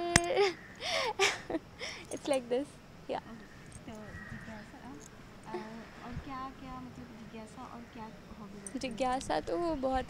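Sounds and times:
woman laughing softly: 0.3s - 2.2s
woman speaking: 2.1s - 10.0s.

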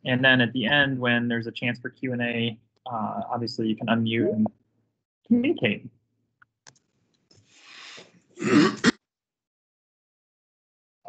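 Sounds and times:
person coughing: 8.4s - 9.0s.

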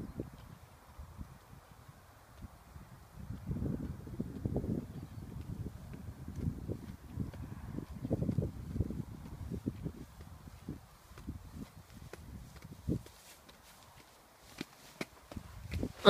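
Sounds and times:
footsteps on asphalt: 0.3s - 16.0s.

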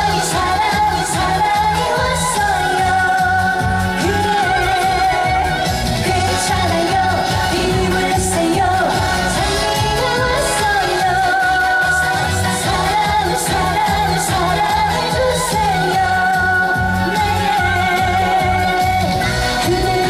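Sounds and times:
amplified backing music: 0.0s - 20.0s
woman singing into microphone: 0.0s - 20.0s.

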